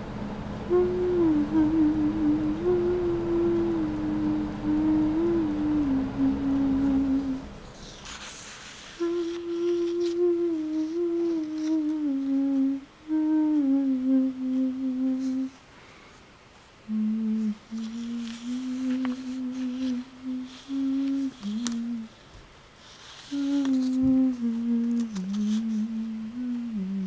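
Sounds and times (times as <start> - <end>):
person humming: 0.6 - 7.5, 8.9 - 15.6, 16.8 - 22.2, 23.1 - 27.0.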